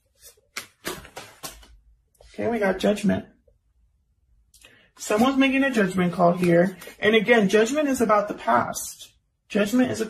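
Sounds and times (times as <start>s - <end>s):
cards being shuffled: 0.0s - 1.8s, 6.2s - 7.0s.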